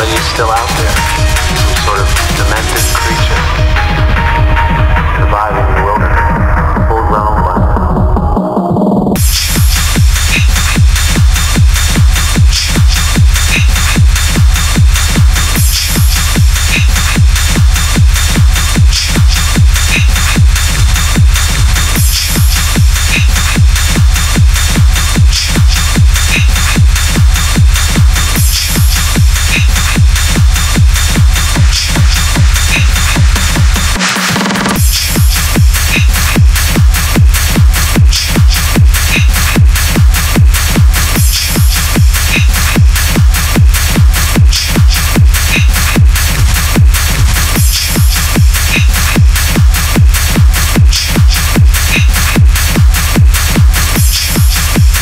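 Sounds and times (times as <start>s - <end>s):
hi-hats: 0.0s - 3.6s, 9.2s - 55.0s
hard techno music: 0.0s - 55.0s
kick drum: 0.0s - 55.0s
high hissing percussion: 9.2s - 33.9s, 34.8s - 55.0s.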